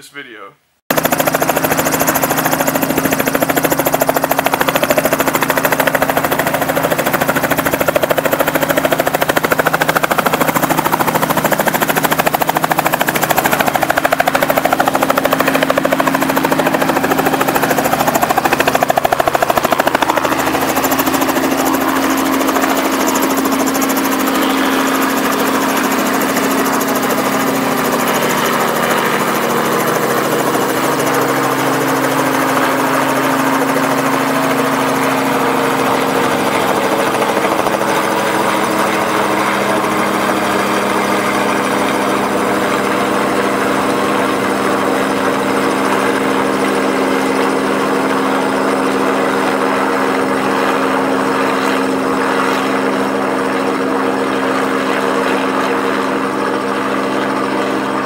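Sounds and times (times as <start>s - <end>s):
steady hum: 0.9s - 42.0s
piston engine drone: 0.9s - 49.7s
helicopter rotor beat: 0.9s - 58.0s.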